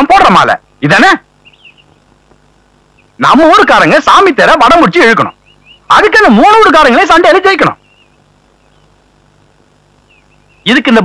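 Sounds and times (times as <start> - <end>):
faint bird chirp: 1.2 - 3.3, 5.0 - 6.1, 6.7 - 11.0
man speaking: 3.2 - 7.8, 10.6 - 11.0.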